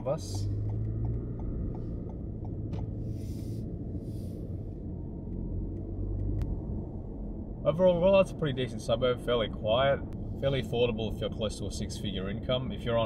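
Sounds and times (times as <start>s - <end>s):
car engine and tyres rumbling: 0.0s - 13.0s.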